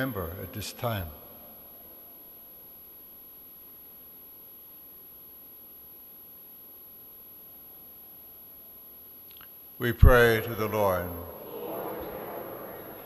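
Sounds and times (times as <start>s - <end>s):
low hiss: 0.0s - 13.0s
faint steady tone: 0.4s - 9.8s.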